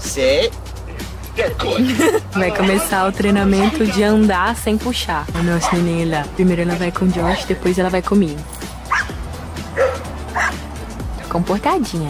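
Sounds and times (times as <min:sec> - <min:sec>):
background music: 0:00.0 - 0:12.0
dog barking: 0:02.4 - 0:04.0, 0:05.4 - 0:06.0, 0:06.7 - 0:07.5, 0:08.9 - 0:09.2, 0:09.8 - 0:10.6.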